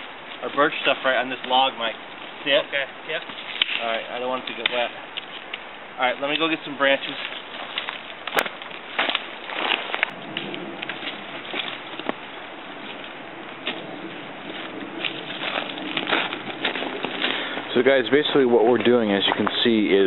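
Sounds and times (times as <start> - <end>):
twigs snapping: 3.2 - 17.8
footsteps in dry leaves and snow: 6.5 - 19.4.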